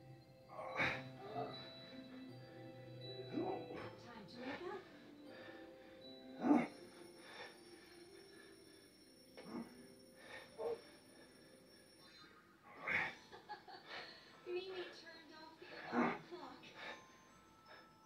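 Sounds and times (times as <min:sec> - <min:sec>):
faint tv show music: 0:00.0 - 0:18.0
tv voices: 0:00.5 - 0:07.4, 0:12.0 - 0:17.1.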